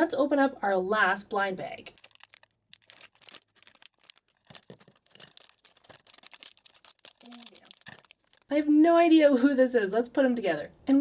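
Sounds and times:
plastic wrapper crinkling: 1.6 - 8.7.

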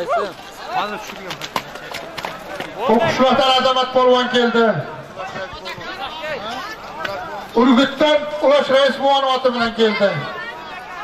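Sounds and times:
horse hooves on frozen ground: 0.6 - 3.2.

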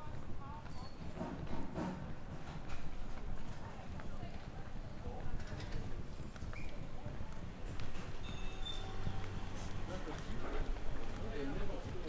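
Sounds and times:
footsteps on pavement: 0.0 - 12.0
street background: 0.0 - 12.0.

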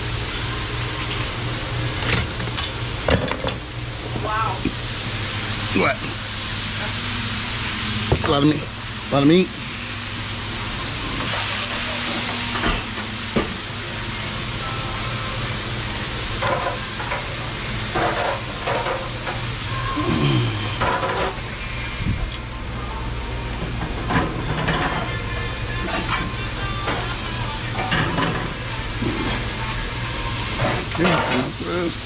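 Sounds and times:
kitchen equipment hum: 0.0 - 32.0
sizzling hiss: 4.3 - 22.4
pans and utensils clinking: 16.4 - 19.4, 20.8 - 21.5, 23.8 - 28.6, 30.6 - 31.6.

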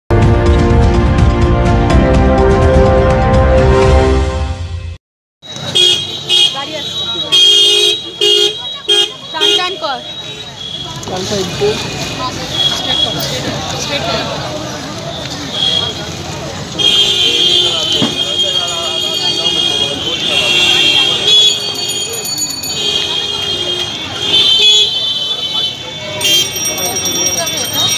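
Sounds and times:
vehicle horns honking: 5.4 - 13.5, 15.1 - 27.9
road traffic: 5.4 - 27.9
people's voices: 5.5 - 27.9.

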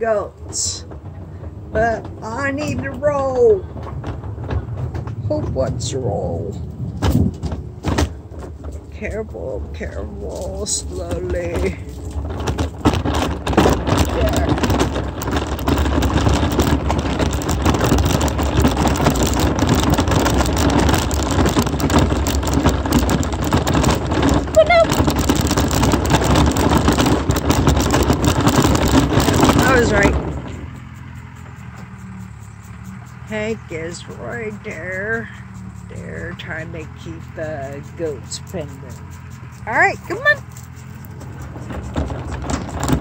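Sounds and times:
wheels rolling over dirt track: 0.0 - 43.0.

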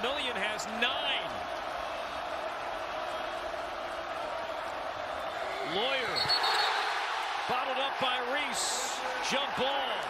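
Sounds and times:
arena crowd noise: 0.0 - 10.0
referee's whistle: 5.8 - 6.9.

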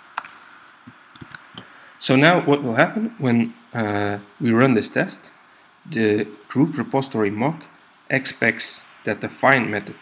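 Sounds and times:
computer keyboard clicks: 1.1 - 1.5.

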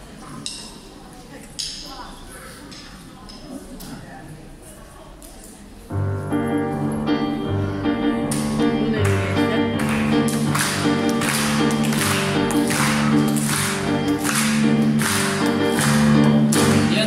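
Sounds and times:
digital piano chords and bass: 6.0 - 17.0
steady beat of sharp strokes: 6.8 - 17.0.

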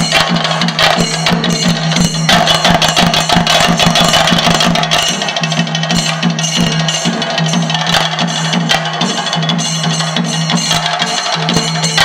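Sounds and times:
drum ensemble rolling: 0.0 - 12.0.

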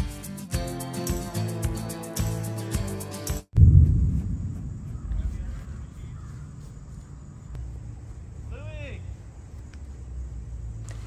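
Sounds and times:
thunder rumbling: 3.6 - 8.5
faint bird call: 4.8 - 7.6.

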